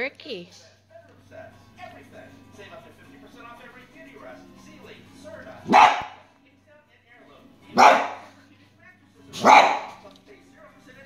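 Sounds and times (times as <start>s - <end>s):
small dog barking: 5.6s - 6.2s, 7.8s - 8.3s, 9.4s - 10.0s.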